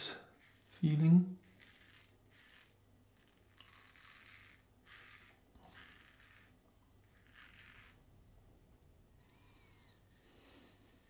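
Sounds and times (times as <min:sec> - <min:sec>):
razor scraping stubble: 0:00.0 - 0:08.1, 0:09.2 - 0:11.0.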